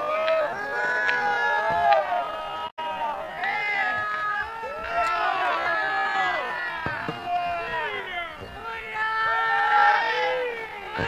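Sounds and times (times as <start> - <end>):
voices shouting over one another: 0.0 - 11.0.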